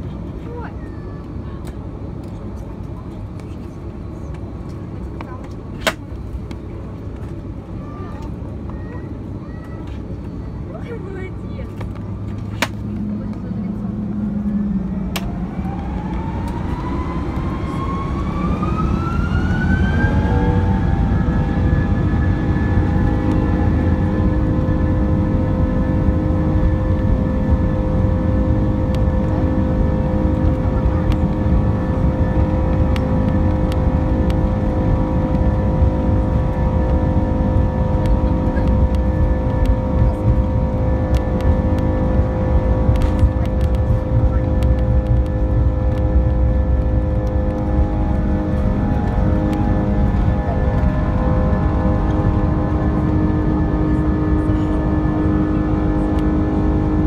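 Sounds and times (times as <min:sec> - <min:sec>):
aircraft rumble: 0:00.0 - 0:57.0
jet engines spooling up: 0:11.9 - 0:57.0.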